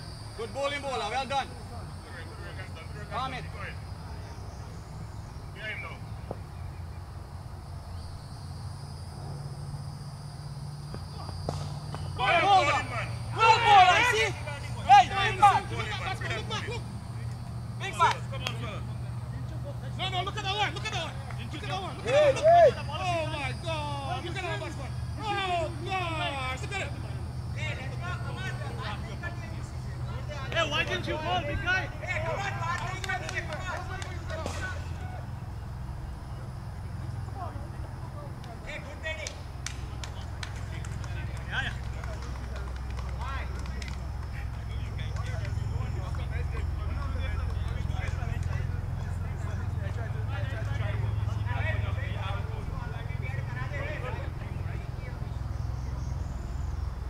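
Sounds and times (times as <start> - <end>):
distant players calling: 0.0 - 57.0
low outdoor hum: 0.0 - 57.0.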